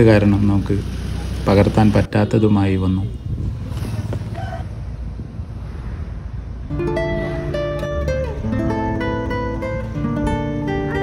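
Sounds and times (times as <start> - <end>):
wind rumble on microphone: 3.2 - 9.0.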